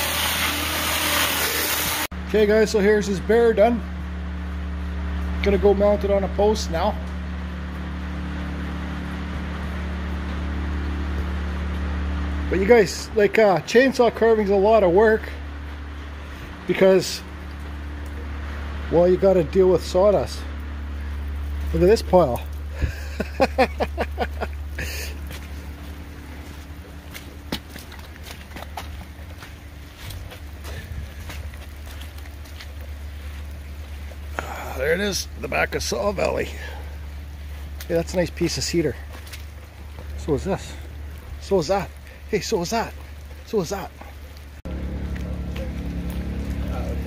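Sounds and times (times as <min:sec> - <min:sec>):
low mechanical drone: 0:00.0 - 0:47.0
steady low hum: 0:00.0 - 0:47.0
footsteps crunching on wood chips: 0:04.0 - 0:36.5, 0:37.1 - 0:47.0
man laughing: 0:22.7 - 0:25.3.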